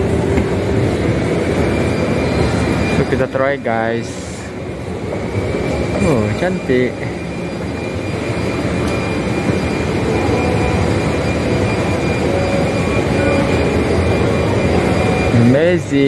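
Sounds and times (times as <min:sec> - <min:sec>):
escalator rumble and hiss: 0:00.0 - 0:16.0
faint high steady tone: 0:00.0 - 0:16.0
shopping mall background noise: 0:00.0 - 0:16.0.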